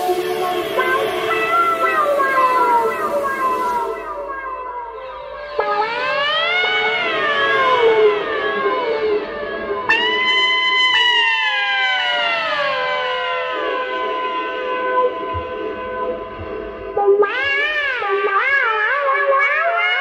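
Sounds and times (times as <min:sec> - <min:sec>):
electric trumpet sliding notes: 0:00.0 - 0:20.0.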